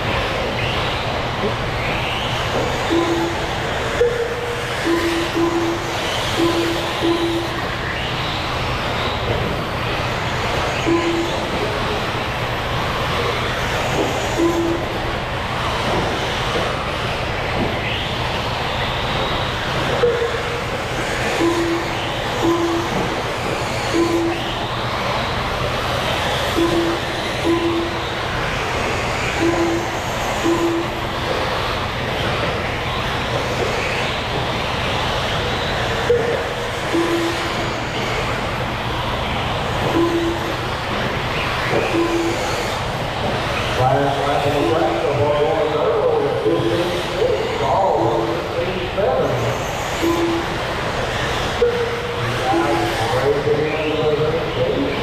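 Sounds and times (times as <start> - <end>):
electric motors whining: 0.0 - 55.0
hall chatter: 2.4 - 55.0
short timing beeps: 2.8 - 7.9, 10.8 - 11.7, 14.2 - 15.1, 20.0 - 20.6, 21.2 - 24.6, 26.5 - 28.2, 29.4 - 31.1, 36.0 - 37.6, 39.8 - 40.6, 41.8 - 42.7, 50.0 - 50.6, 51.6 - 53.2
wavering voice-like sound: 51.6 - 55.0.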